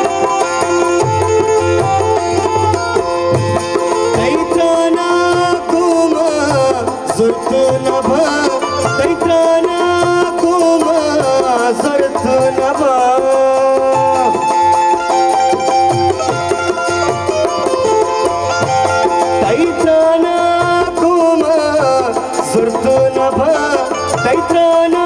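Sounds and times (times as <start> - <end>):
gliding melody line: 0.0 - 25.0
hand drum beat: 0.0 - 25.0
harmonium: 0.0 - 25.0.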